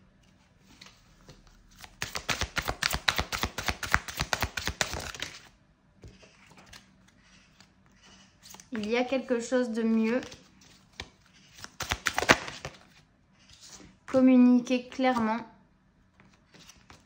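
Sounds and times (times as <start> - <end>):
cards being shuffled: 0.7 - 5.5, 9.8 - 13.9.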